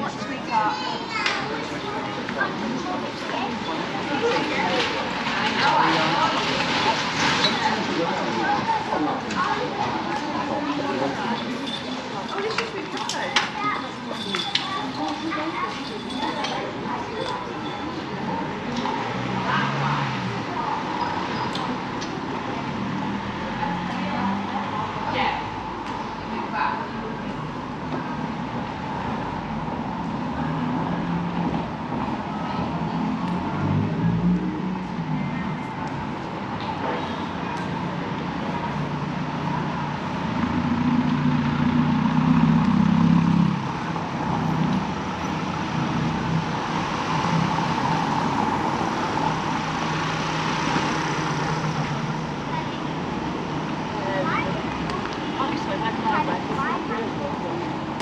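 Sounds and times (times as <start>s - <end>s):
steady traffic noise: 0.0s - 58.0s
voices of passers-by: 0.0s - 58.0s
loud vehicle passing: 18.1s - 58.0s.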